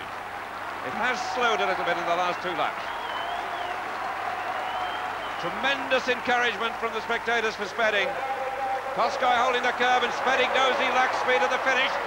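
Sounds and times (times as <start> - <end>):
crowd applauding and cheering: 0.0 - 12.0.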